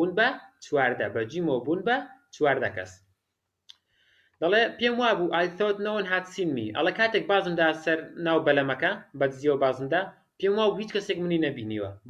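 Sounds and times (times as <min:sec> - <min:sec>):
man speaking: 0:00.0 - 0:03.1, 0:04.4 - 0:12.0.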